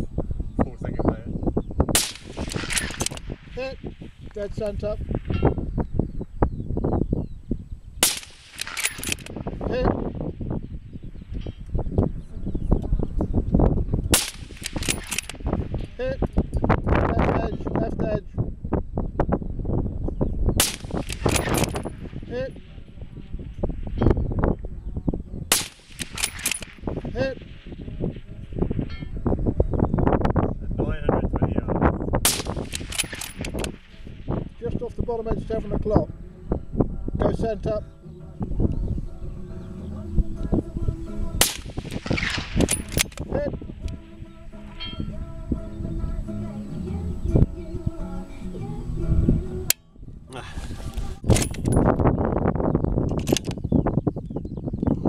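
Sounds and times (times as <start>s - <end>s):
suppressed rifle shots: 1.9s - 4.2s, 8.0s - 10.1s, 14.1s - 15.8s, 20.6s - 22.2s, 25.5s - 28.8s, 32.2s - 34.6s, 41.4s - 44.0s.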